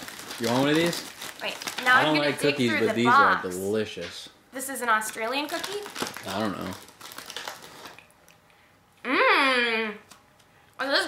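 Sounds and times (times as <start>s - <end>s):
person crunching cookie: 6.0s - 8.4s.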